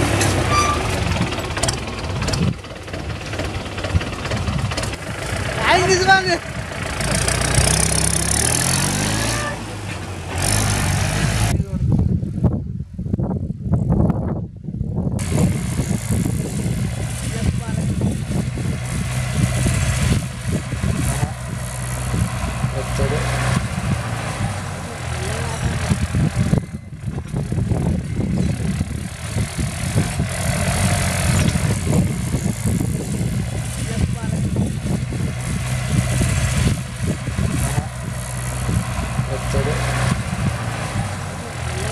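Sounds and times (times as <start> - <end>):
tractor diesel engine running: 0.0 - 11.6, 15.2 - 41.9.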